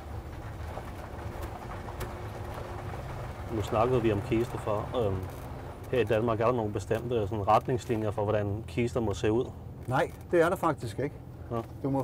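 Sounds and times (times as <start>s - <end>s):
steady low rumble: 0.0s - 9.8s.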